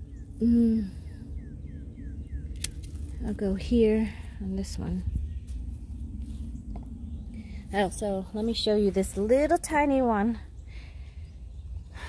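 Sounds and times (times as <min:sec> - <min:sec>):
steady low rumble: 0:00.0 - 0:12.0
hand pruners click: 0:02.6 - 0:03.0.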